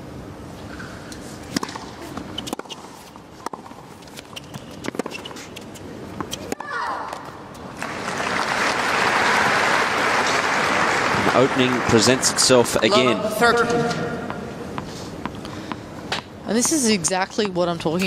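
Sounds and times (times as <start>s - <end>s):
tennis ball bouncing: 0.8s - 7.4s
racket striking tennis ball: 1.4s - 7.4s
crowd applause: 7.8s - 12.8s.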